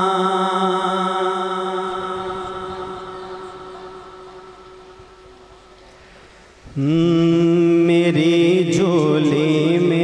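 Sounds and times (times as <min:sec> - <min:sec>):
chanted vocal note: 0:00.0 - 0:06.0
faint hiss: 0:01.8 - 0:08.3.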